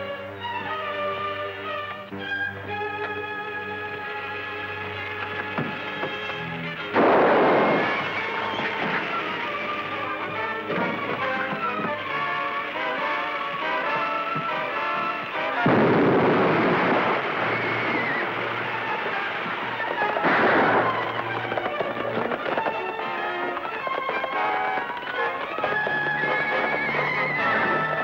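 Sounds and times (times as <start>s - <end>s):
dramatic orchestral music: 0.0s - 28.0s
explosion blast: 7.0s - 9.6s, 15.6s - 21.4s.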